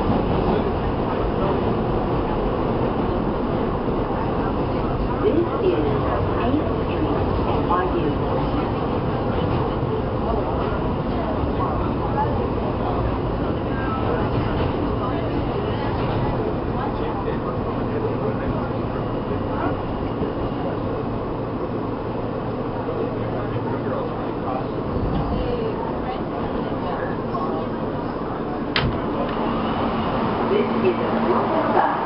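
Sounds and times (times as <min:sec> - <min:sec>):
subway car rumbling on tracks: 0:00.0 - 0:32.0.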